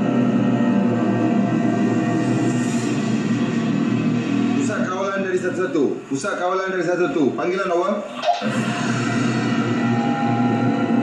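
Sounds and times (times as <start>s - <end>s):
low drone with held tones: 0.0s - 6.0s, 8.3s - 11.0s.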